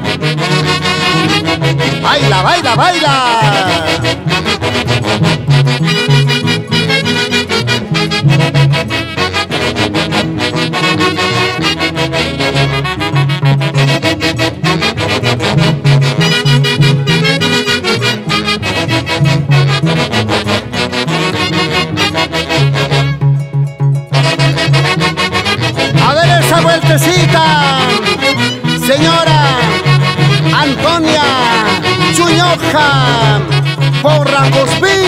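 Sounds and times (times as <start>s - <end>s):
saxophones playing melody: 0.0s - 35.0s
violin: 21.1s - 32.4s.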